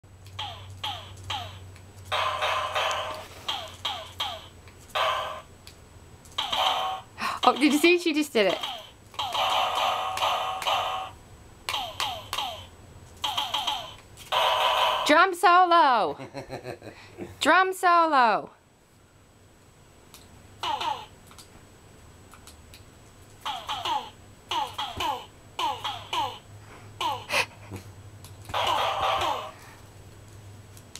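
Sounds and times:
electronic toy drum sounds: 0.3s - 5.5s, 6.3s - 15.2s, 28.5s - 29.6s.

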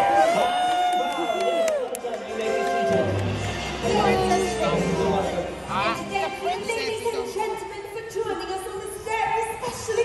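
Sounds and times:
audience noise: 0.0s - 7.9s
music playing: 1.1s - 8.6s.

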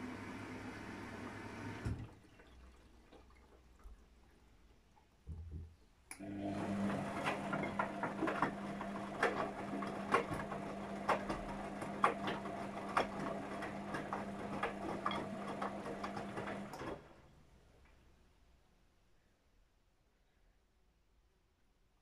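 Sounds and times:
washing machine drum motor humming: 6.2s - 17.1s.

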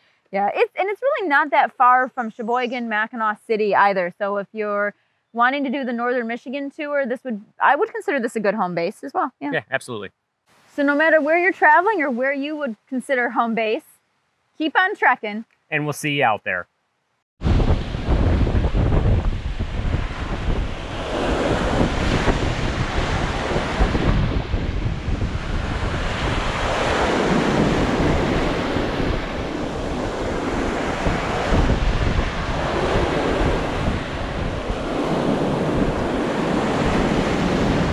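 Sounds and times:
waves washing up sand beach: 17.4s - 37.9s
wind buffeting microphone: 17.4s - 37.9s.

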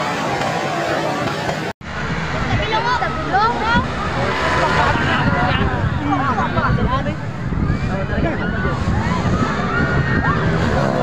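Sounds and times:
crowd chatter: 0.0s - 11.0s
distant motorcycles racing: 0.0s - 11.0s.

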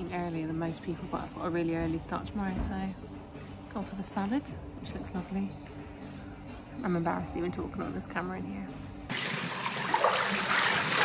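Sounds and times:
pool water trickling: 9.1s - 11.0s.

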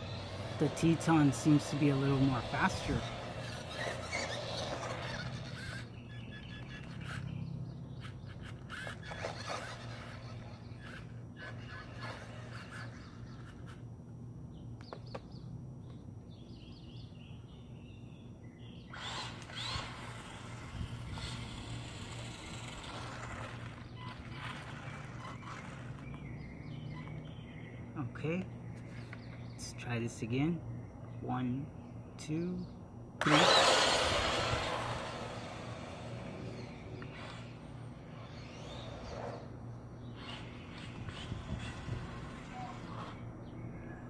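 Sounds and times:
rc truck tyre and motor noise: 0.0s - 13.8s, 18.7s - 27.5s, 33.2s - 44.0s
steady low hum: 0.0s - 44.0s
bird chirps: 3.1s - 13.7s, 23.8s - 32.8s.

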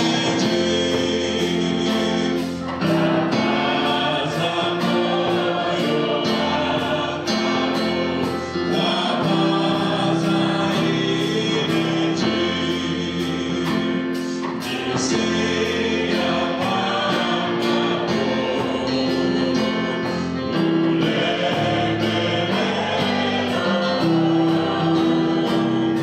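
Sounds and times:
man singing into a microphone: 0.0s - 7.1s, 8.6s - 20.1s
congregation singing a hymn: 0.0s - 26.0s.

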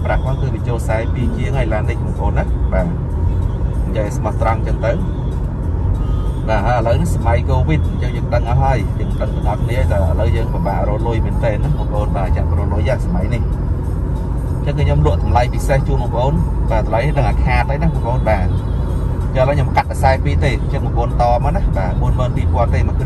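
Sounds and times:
man talking: 0.0s - 3.0s, 3.8s - 5.1s, 6.4s - 13.5s, 14.6s - 18.6s, 19.3s - 23.0s
car engine and tyres droning: 0.0s - 23.0s.

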